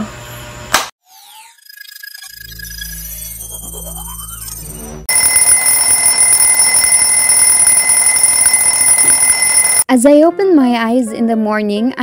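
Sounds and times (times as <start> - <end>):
alarm ringing: 5.1 - 9.9.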